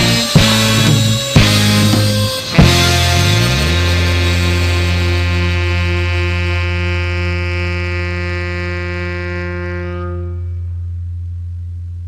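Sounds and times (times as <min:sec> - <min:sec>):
band chord ringing out: 0:00.0 - 0:11.2.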